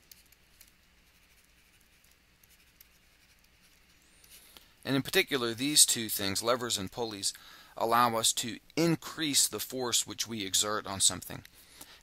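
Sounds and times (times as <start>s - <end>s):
stylus scratching on tablet: 0.0s - 4.5s
man speaking: 4.8s - 11.5s.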